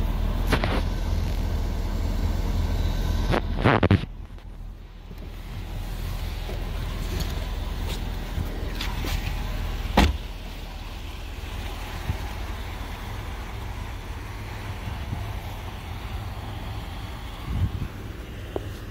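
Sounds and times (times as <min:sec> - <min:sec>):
low rumble: 0:00.0 - 0:18.9
car door shutting: 0:06.4 - 0:10.4.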